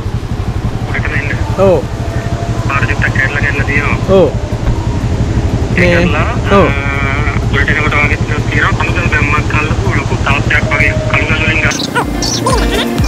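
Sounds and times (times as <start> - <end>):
motorcycle engine running: 0.0 - 13.0
man talking: 2.6 - 4.4, 5.7 - 11.8.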